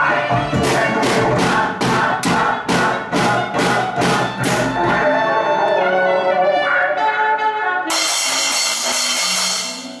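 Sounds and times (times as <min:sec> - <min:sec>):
cymbal crash ringing: 0:07.9 - 0:10.0.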